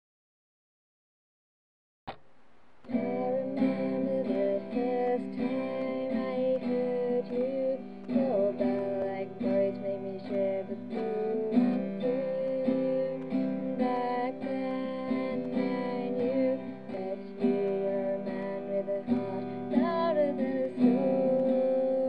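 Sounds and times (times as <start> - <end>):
strummed acoustic guitar: 2.8 - 22.0.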